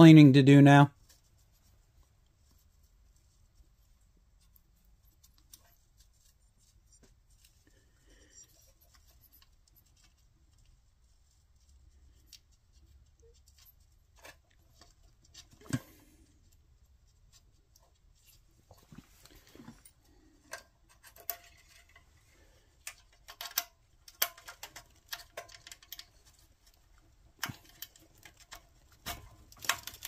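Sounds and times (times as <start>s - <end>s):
small metal parts clicking: 19.8s - 22.1s, 22.8s - 30.0s.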